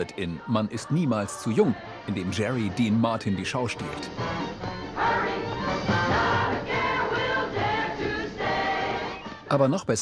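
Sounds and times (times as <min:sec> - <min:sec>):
group singing with band: 0:04.7 - 0:09.4.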